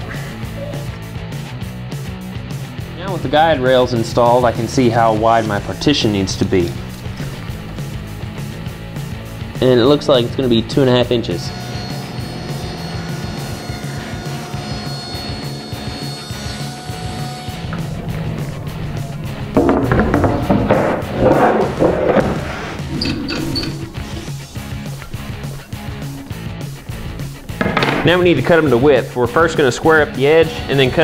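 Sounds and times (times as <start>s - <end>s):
background music: 0.0s - 31.0s
table saw cutting board: 9.8s - 28.8s.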